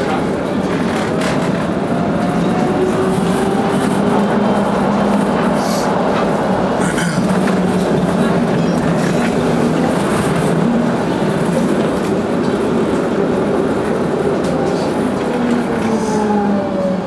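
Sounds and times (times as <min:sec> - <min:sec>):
tram wheels rumbling on rails: 0:00.0 - 0:17.0.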